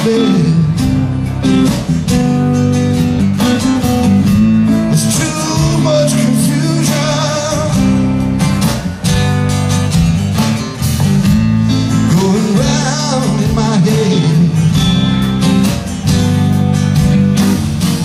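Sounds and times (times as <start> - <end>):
blues-rock band playing: 0.0 - 18.0.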